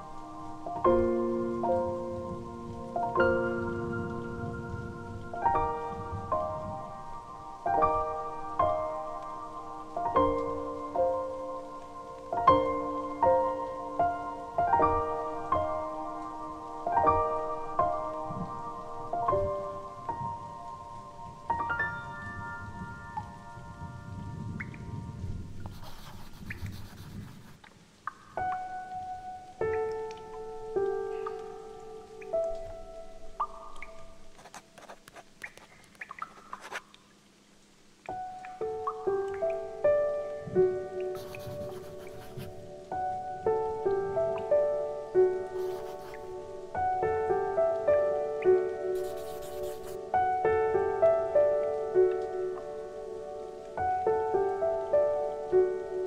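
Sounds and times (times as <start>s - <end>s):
slow piano waltz: 0.0s - 36.9s, 38.0s - 56.0s
falling rain: 0.0s - 56.0s.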